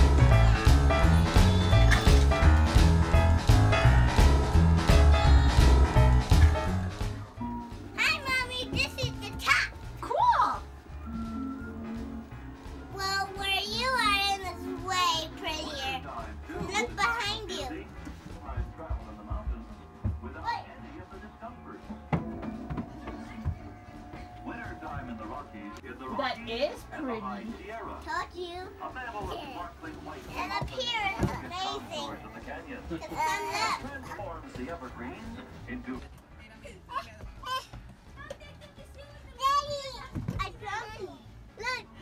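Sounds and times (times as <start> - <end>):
background music with low beat: 0.0 - 42.0.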